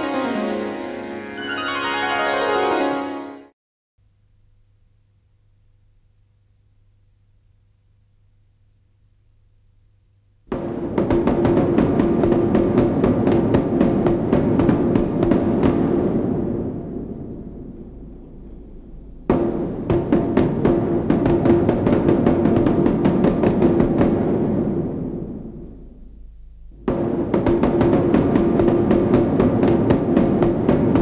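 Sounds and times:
fast drum strikes: 10.5s - 31.0s.

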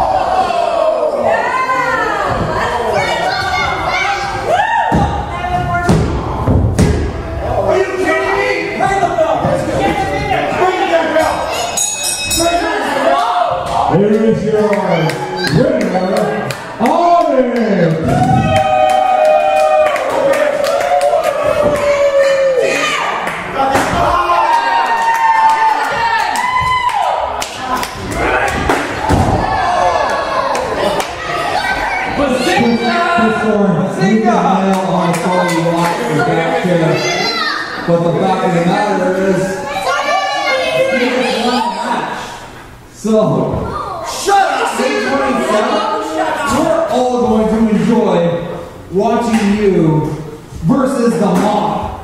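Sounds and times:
crowd shouting: 0.0s - 6.5s, 18.0s - 33.8s, 44.0s - 46.7s.

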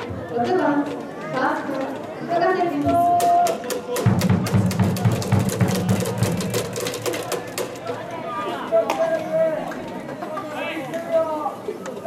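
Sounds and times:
crowd clapping in rhythm: 3.7s - 7.8s.

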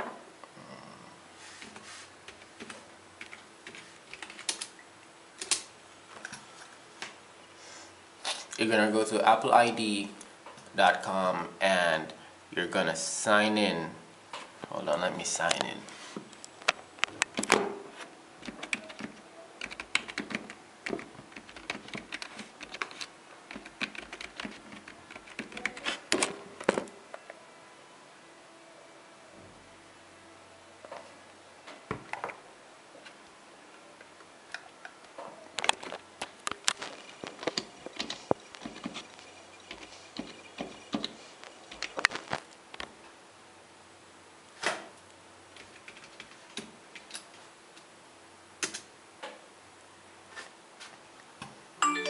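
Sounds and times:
computer keyboard typing: 2.3s - 4.7s, 5.4s - 5.7s, 18.4s - 26.0s, 36.6s - 42.2s, 45.6s - 47.2s
keyboard typing clicks: 18.4s - 25.8s.

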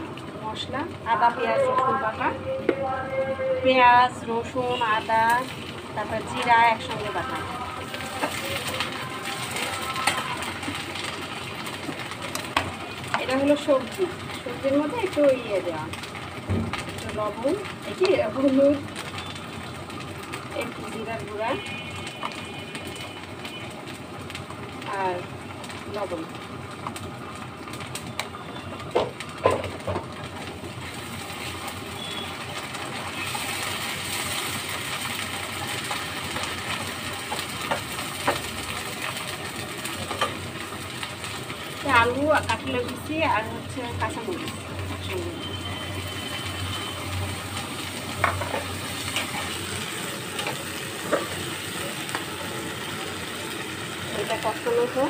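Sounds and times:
food sizzling in frying pan: 0.0s - 55.0s.

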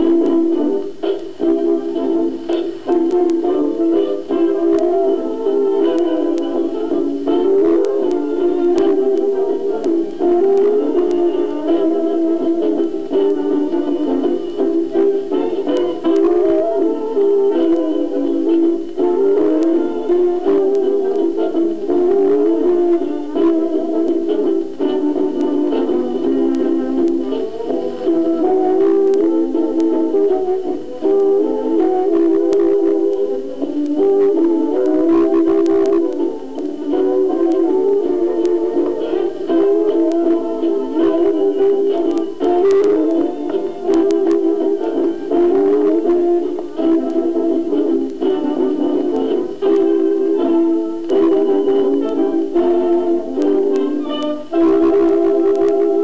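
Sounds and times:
instrumental dance-band music: 0.0s - 56.0s
record surface clicks: 0.0s - 56.0s.

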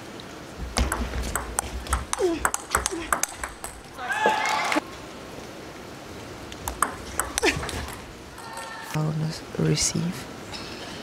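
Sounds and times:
table tennis ball clicking: 0.8s - 3.9s, 6.6s - 8.0s.

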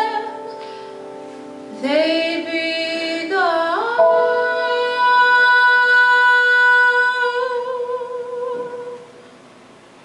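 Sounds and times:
woman singing a held note: 3.9s - 7.4s.

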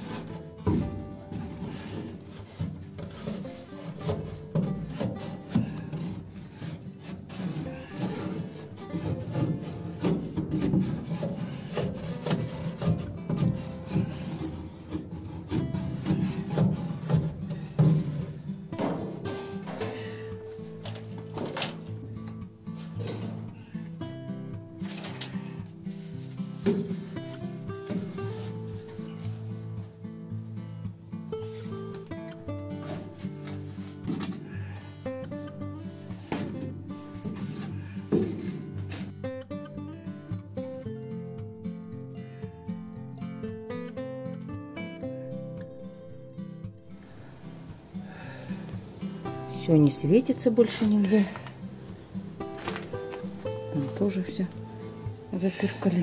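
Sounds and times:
gloved hands stuffing insulation: 0.0s - 23.7s
background music: 0.0s - 56.0s.

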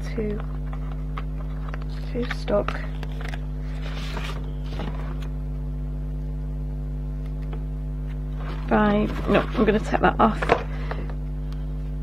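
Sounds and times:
electrical hum: 0.0s - 12.0s
paper sticker sheet rustling: 0.2s - 5.3s, 8.4s - 10.0s.

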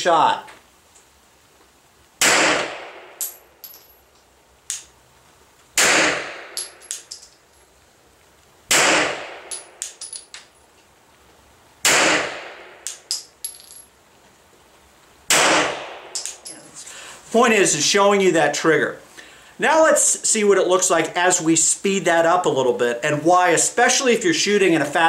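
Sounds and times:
pistol shots: 2.2s - 3.3s, 5.8s - 6.7s, 8.7s - 9.7s, 11.8s - 12.9s, 15.3s - 16.4s
brass casings tinkling: 3.2s - 4.1s, 16.2s - 16.8s.

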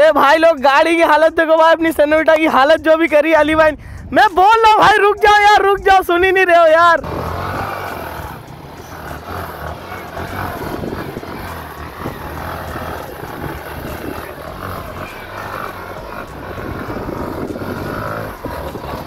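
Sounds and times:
motorcycle engine revving: 7.0s - 19.0s
wheel churning in wet sand: 7.0s - 19.0s.

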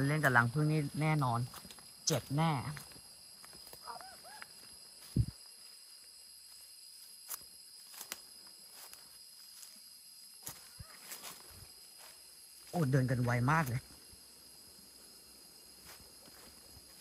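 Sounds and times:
insects droning: 0.0s - 17.0s
footsteps through dry leaves: 6.6s - 12.9s.

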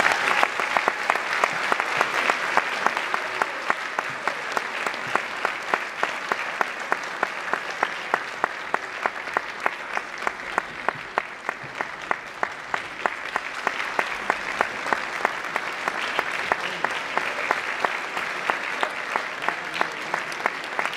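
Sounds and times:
audience applauding: 0.0s - 20.9s.

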